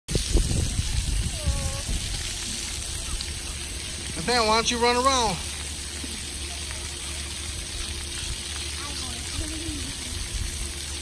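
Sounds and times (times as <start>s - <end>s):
water jets hissing: 0.1s - 11.0s.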